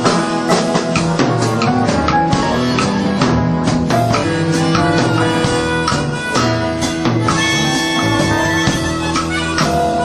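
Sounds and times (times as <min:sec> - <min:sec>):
bass guitar: 0:00.0 - 0:10.0
drum kit: 0:00.0 - 0:10.0
electric guitar: 0:00.0 - 0:10.0.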